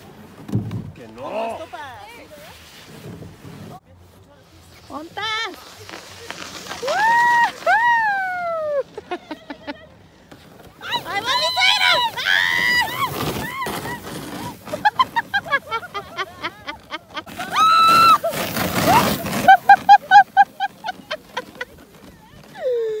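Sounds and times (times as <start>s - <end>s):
sled rushing on snow: 0.0s - 23.0s
children shouting and squealing: 10.7s - 14.6s, 17.3s - 19.4s.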